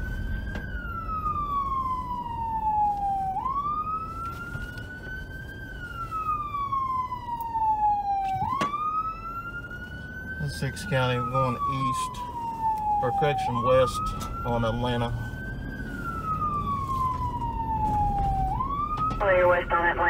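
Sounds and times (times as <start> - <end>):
police siren wailing: 0.0 - 20.0
road and engine noise: 0.0 - 20.0.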